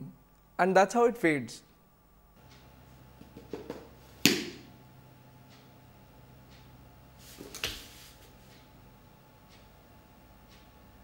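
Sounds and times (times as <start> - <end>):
book clapped shut: 3.4 - 4.6.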